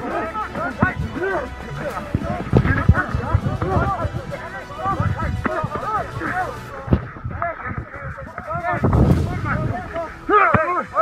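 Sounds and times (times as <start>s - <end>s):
men shouting and yelling: 0.0s - 11.0s.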